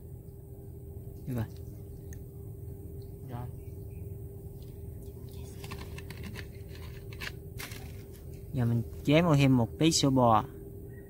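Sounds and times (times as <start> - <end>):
steady low hum: 0.0 - 11.0
plastic bottle and cups handled: 4.6 - 8.5.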